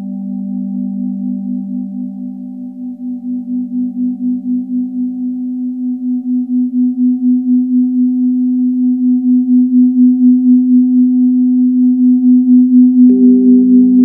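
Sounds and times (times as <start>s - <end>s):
faint high synth tones: 12.2s - 14.0s
pulsing synthesizer drone: 12.8s - 14.0s.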